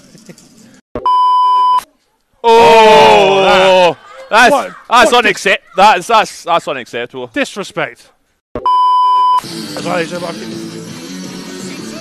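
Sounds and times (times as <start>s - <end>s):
electronic bleep tone: 1.0s - 1.8s, 8.6s - 9.4s
faint talk and laughter: 3.7s - 6.2s.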